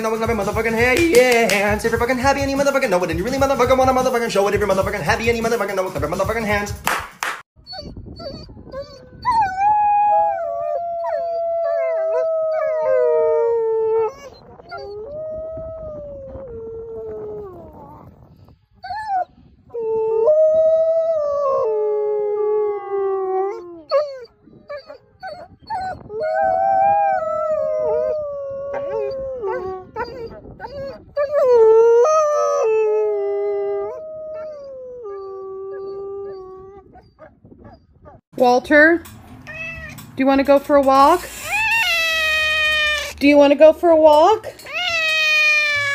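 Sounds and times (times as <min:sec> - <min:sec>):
wolves howling: 0:08.4 - 0:18.0, 0:19.8 - 0:37.2.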